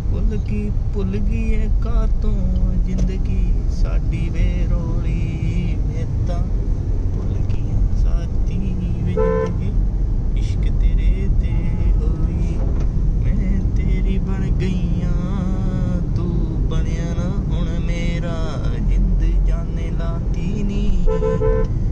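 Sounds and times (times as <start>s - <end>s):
engine and tyres rumble: 0.0s - 21.9s
vehicle horn toot: 9.2s - 9.6s, 21.1s - 21.8s.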